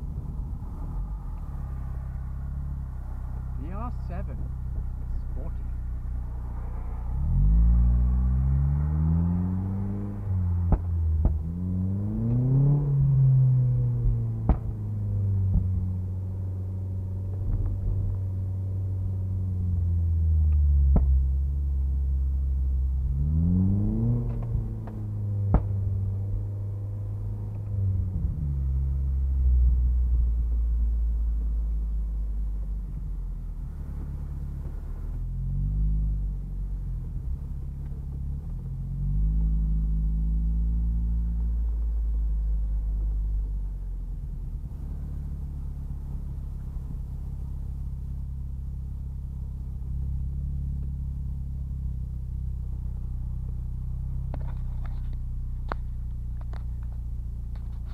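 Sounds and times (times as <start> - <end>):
car engine rumble: 0.0 - 57.9.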